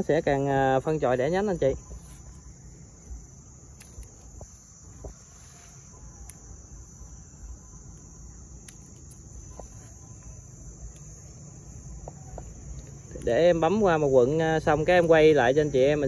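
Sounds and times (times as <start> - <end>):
insects chirring: 0.0 - 16.0
pruning shears snipping: 1.8 - 5.3.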